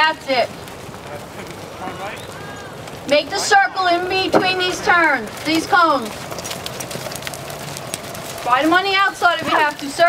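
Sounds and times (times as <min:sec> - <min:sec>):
horse hoofbeats on sand: 0:00.6 - 0:10.0.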